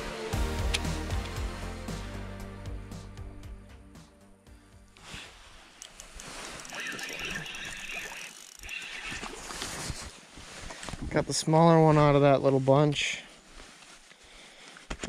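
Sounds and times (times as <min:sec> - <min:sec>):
background music: 0:00.0 - 0:05.2
spinning reel reeling in: 0:05.8 - 0:10.0.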